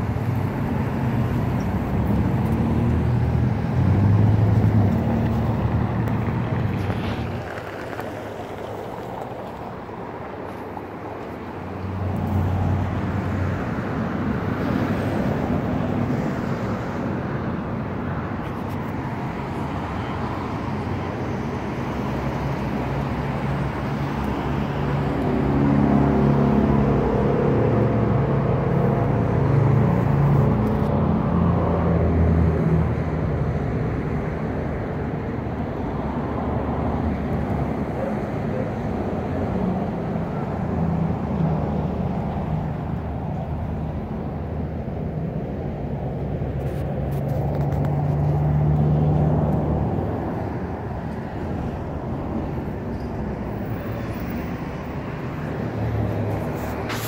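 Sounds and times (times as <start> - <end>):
vehicle passing: 0.0 - 17.2, 18.4 - 34.8, 45.0 - 57.0
road traffic engines: 0.0 - 57.0.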